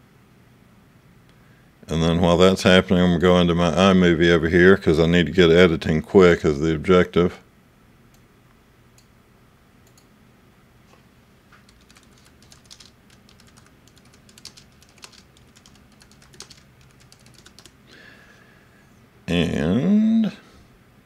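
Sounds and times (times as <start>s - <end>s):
low steady hum: 0.0s - 21.0s
typing on computer keyboard: 11.7s - 17.8s.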